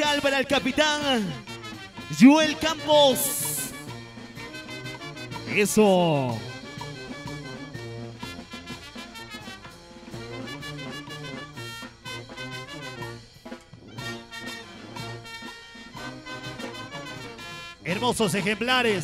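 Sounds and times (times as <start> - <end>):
brass band playing with drums: 0.0 - 19.0.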